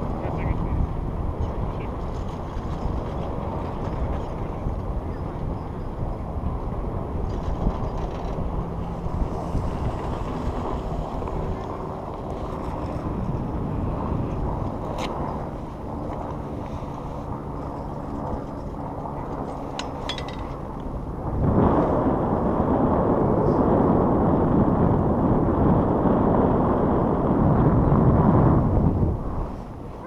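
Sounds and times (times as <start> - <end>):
low hum of chairlift: 0.0 - 30.0
wind on microphone: 0.0 - 30.0.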